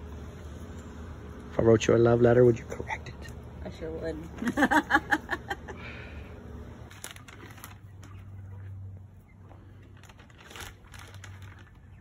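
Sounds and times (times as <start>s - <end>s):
low steady rumble: 0.0s - 12.0s
sharp crackles: 6.8s - 8.3s, 9.7s - 12.0s
crunching in dry leaves: 6.8s - 8.7s, 9.5s - 12.0s.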